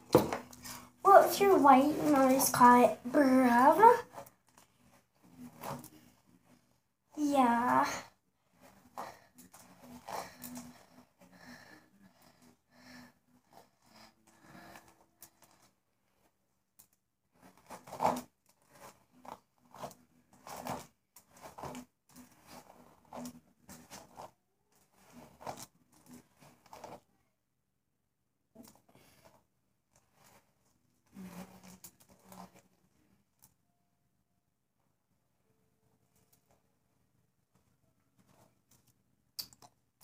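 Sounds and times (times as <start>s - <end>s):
hairbrush swishing through hair: 0.2s - 4.3s, 8.5s - 11.2s, 17.4s - 27.0s.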